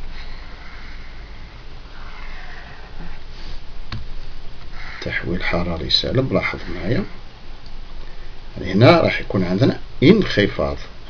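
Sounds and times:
low steady hum: 0.0 - 11.0
soft airy hiss: 0.0 - 11.0.

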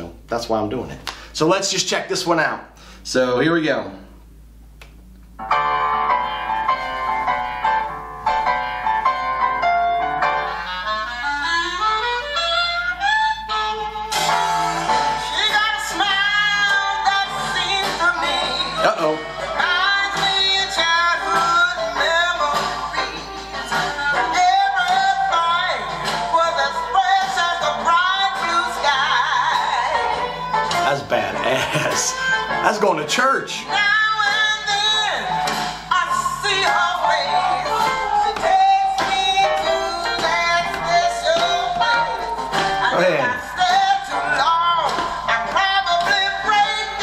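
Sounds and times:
jazz band playing: 5.4 - 33.0
woman singing with vibrato: 15.1 - 30.7, 33.7 - 47.0.

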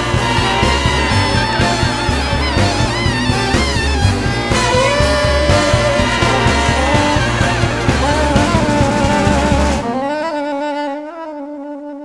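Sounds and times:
jazz big band playing: 0.0 - 11.4
solo wind instrument melody: 0.0 - 12.0.

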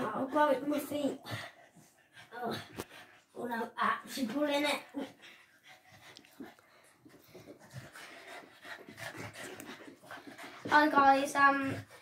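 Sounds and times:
dog breathing hard: 0.0 - 12.0.

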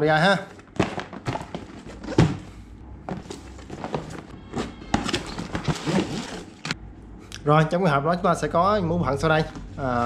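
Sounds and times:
packaging knocks and rustles: 0.6 - 2.5, 3.1 - 6.8
cardboard box being opened: 3.1 - 6.7.

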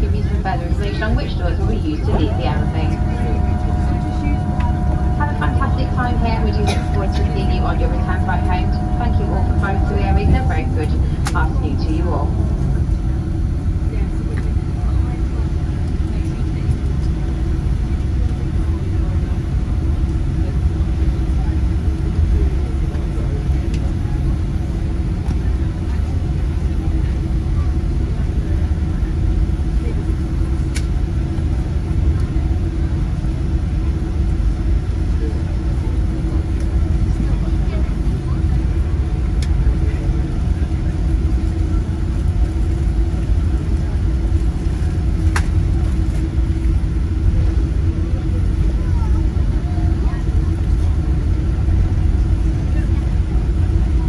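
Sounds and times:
jet engines idling rumble: 0.0 - 54.0
steady cabin hum: 0.0 - 54.0.

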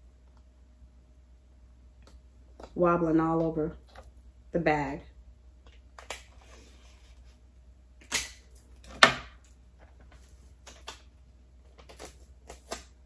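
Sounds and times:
tape tearing snap: 8.0 - 9.3.

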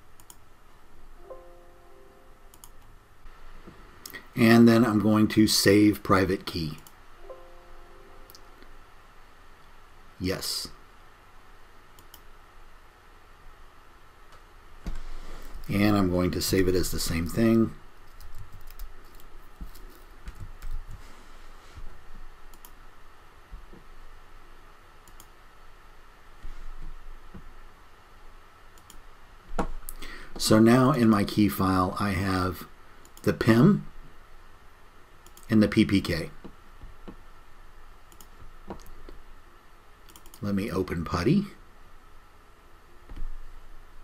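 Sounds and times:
computer mouse clicks: 0.2 - 0.4, 2.5 - 2.9, 12.0 - 12.3, 18.1 - 21.0, 22.5 - 22.8, 25.0 - 25.3, 28.8 - 29.0, 35.2 - 35.5, 38.1 - 39.2, 40.0 - 40.4
typing on computer keyboard: 18.1 - 20.8.

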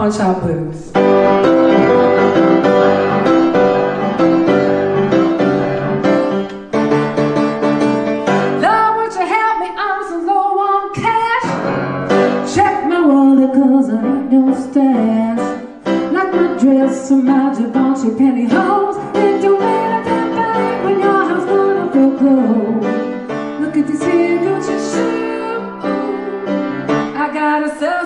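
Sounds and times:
piano playing blues: 0.8 - 28.0
woman singing: 8.5 - 11.6, 12.3 - 23.0, 23.6 - 28.0.

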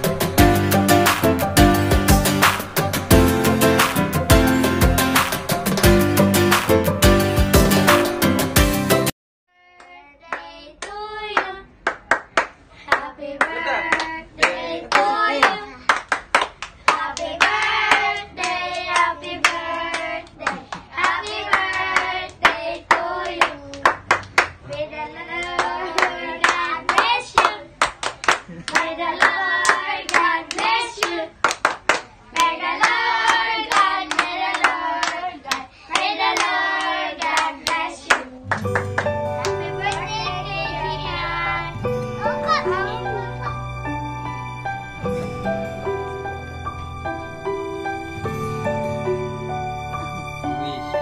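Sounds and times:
people clapping along: 1.0 - 2.7, 3.8 - 4.2, 5.1 - 7.0, 9.8 - 41.2
group singing: 16.9 - 23.6, 32.4 - 38.3.

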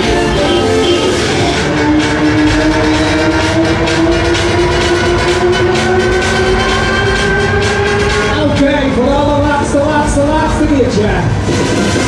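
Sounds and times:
fairground music: 0.0 - 12.0.

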